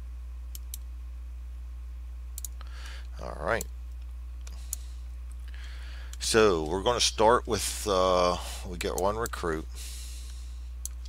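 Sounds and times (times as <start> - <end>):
steady low hum: 0.0 - 11.0
computer mouse clicks: 2.4 - 3.0.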